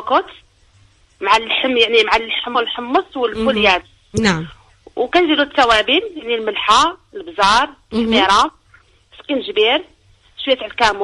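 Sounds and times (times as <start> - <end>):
women talking: 0.0 - 0.4, 1.2 - 8.5, 9.2 - 11.0
voices over a telephone line: 1.2 - 8.5.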